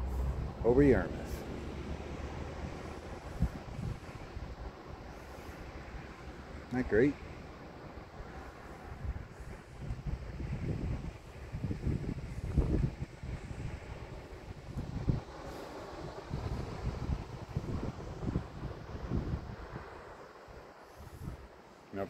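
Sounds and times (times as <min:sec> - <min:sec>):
wind buffeting microphone: 0:00.0 - 0:21.6.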